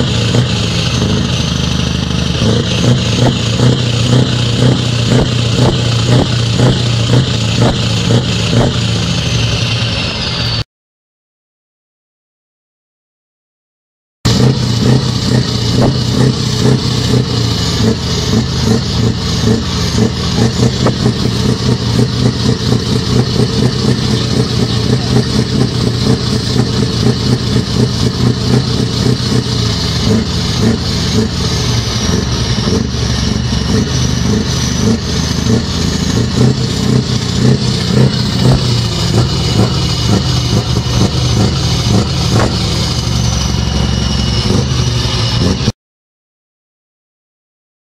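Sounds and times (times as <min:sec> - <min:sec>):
truck diesel engine revving: 0:00.0 - 0:10.6, 0:14.3 - 0:45.8.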